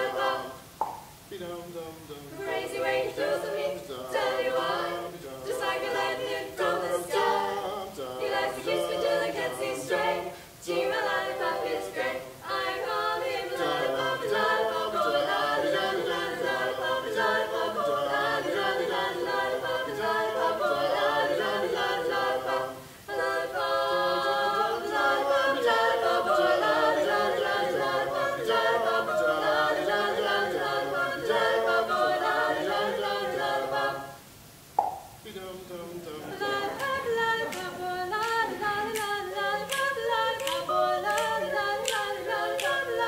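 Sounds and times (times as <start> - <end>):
a cappella group singing in harmony: 0.0 - 34.4, 35.2 - 43.0.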